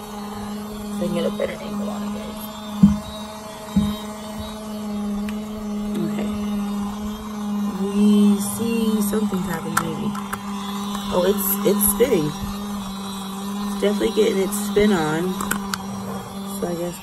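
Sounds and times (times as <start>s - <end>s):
small electric motor humming: 0.0s - 17.0s
sharp knock: 2.8s - 3.0s
handling knocks on plastic casing: 2.8s - 4.0s.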